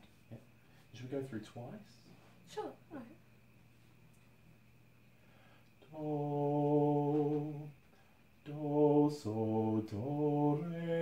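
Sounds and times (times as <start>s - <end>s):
voices singing one steady note: 5.1s - 11.0s.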